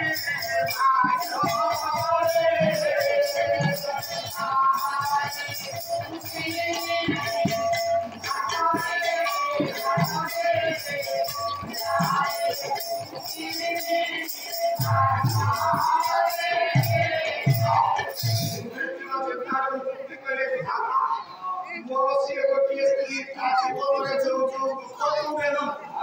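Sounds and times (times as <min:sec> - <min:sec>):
hand cymbals jingling: 0:00.0 - 0:18.7.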